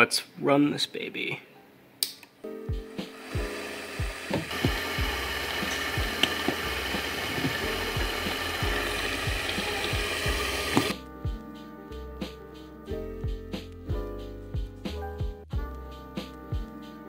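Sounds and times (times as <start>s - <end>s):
music with thumping beat: 2.7s - 11.6s, 13.2s - 17.0s
steady rushing hiss: 2.8s - 11.0s.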